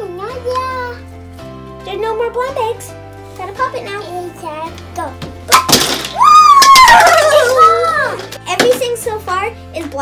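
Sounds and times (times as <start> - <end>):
child squealing excitedly: 6.2 - 8.2.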